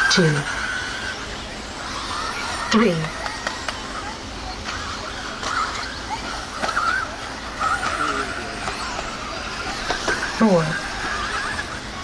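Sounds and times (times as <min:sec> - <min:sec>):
electric motors whining: 0:00.0 - 0:12.0
sharp clicks from toy cars: 0:03.2 - 0:03.8, 0:07.6 - 0:09.1, 0:09.7 - 0:10.3.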